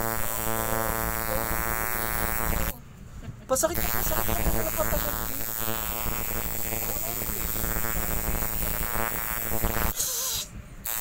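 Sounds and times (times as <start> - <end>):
tattoo machine buzzing: 0.0 - 2.8, 3.7 - 11.0
bursts of hiss: 3.8 - 11.0.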